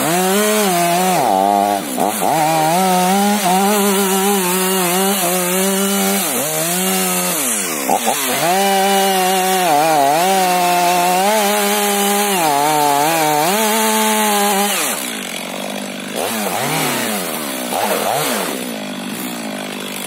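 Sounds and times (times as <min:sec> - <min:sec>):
chainsaw cutting wood: 0:00.0 - 0:20.0.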